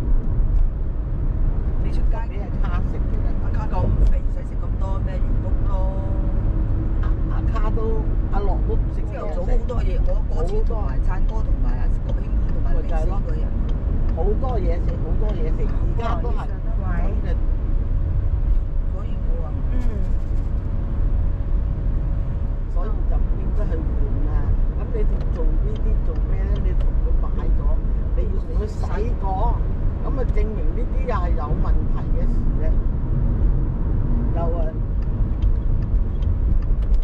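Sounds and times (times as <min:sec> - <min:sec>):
car driving rumble: 0:00.0 - 0:37.0
voices talking: 0:07.0 - 0:17.4, 0:22.7 - 0:32.8.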